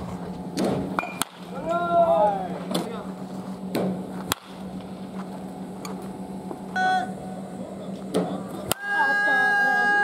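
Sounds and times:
steady low hum: 0.0s - 10.0s
bat cracking against baseball: 0.6s - 1.5s, 3.7s - 4.7s.

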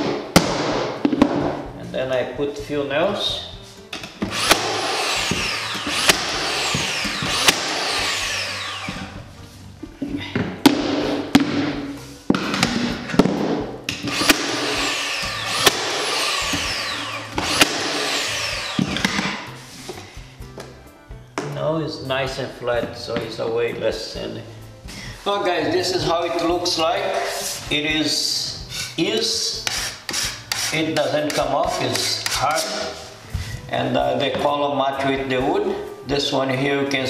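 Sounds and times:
nailer motor whirring: 4.2s - 9.2s, 14.0s - 19.5s
nail gun shots: 4.4s - 6.4s, 7.4s - 7.8s, 14.1s - 14.7s, 15.6s - 16.0s, 17.4s - 18.0s.

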